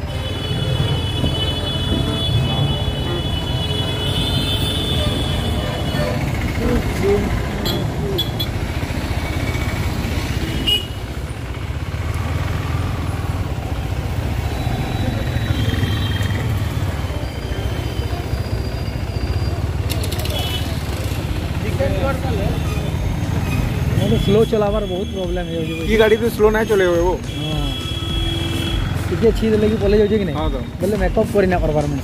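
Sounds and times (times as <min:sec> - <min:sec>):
motorcycle engine running: 0:04.8 - 0:17.0.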